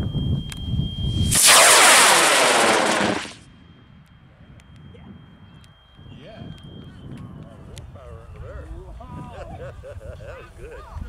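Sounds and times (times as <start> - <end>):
low rumble: 1.0 - 3.4
rocket motor roaring: 1.1 - 3.4.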